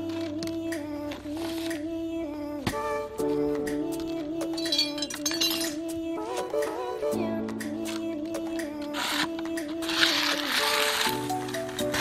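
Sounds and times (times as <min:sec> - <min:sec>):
background music: 0:00.0 - 0:12.0
soil scraped across concrete: 0:08.9 - 0:12.0.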